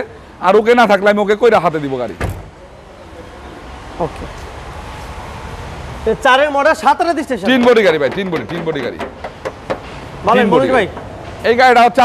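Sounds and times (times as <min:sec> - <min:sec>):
car door clunk: 0:02.2 - 0:02.5.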